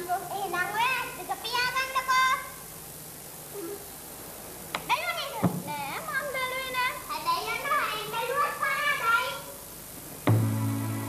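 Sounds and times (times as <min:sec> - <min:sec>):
children speaking: 0:00.0 - 0:02.6, 0:04.8 - 0:09.6.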